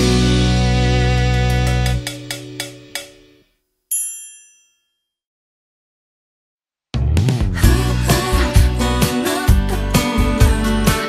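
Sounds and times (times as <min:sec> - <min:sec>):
high bell-like ding: 0:02.1 - 0:05.2.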